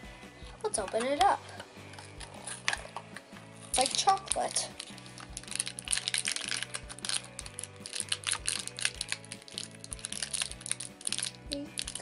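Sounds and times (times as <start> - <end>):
background music with beat: 0.0 - 12.0
foil packet crinkling: 2.0 - 3.0, 3.6 - 12.0.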